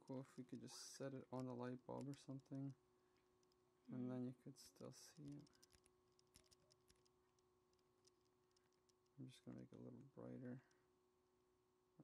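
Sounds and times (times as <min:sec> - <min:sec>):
faint clicks: 0:00.0 - 0:04.0, 0:04.6 - 0:09.7
low steady hum: 0:00.0 - 0:12.0.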